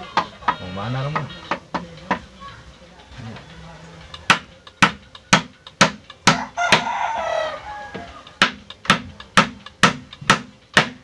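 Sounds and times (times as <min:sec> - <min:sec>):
hammer striking wooden frame: 0:00.0 - 0:02.2, 0:04.3 - 0:07.0, 0:08.4 - 0:11.0
rooster crowing: 0:06.3 - 0:08.4.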